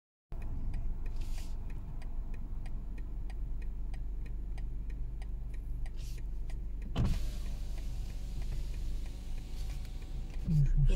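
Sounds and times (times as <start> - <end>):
car engine idling: 0.3 - 10.9.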